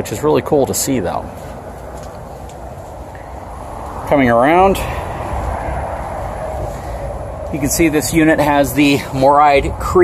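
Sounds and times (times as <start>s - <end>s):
low rumble and hiss outdoors: 0.0s - 10.0s.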